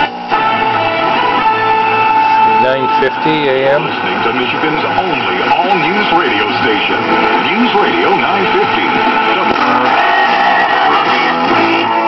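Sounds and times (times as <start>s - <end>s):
radio announcer speaking: 2.4s - 9.8s.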